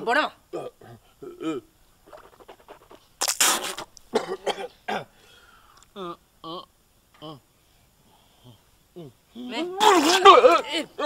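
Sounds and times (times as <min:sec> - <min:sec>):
man coughing: 0:04.1 - 0:05.1.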